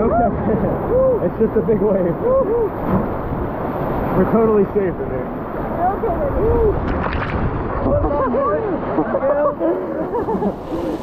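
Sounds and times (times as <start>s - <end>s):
water buffeting microphone: 0.0s - 11.0s
whitewater rapids rushing: 0.0s - 11.0s.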